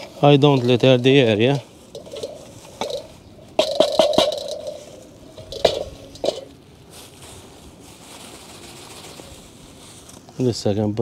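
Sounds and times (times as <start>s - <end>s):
faint handling noise: 0.0s - 11.0s
metal knocks of barbecue: 2.0s - 4.8s, 5.4s - 6.5s.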